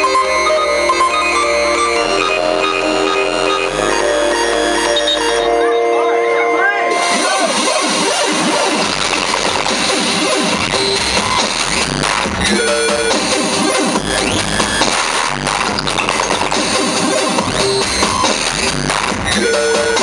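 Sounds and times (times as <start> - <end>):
noisy wash with pitch sweeps: 0.0 - 12.5
synth melody over bass line: 0.0 - 20.0.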